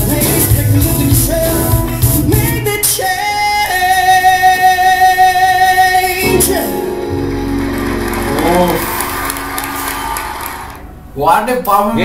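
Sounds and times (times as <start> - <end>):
band playing: 0.0 - 2.9, 5.8 - 11.0.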